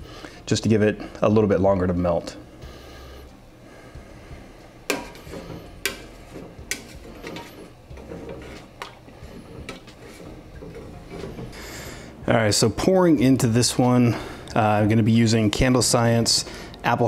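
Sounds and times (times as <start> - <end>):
utensil scraping and clinking metal: 4.9 - 11.8.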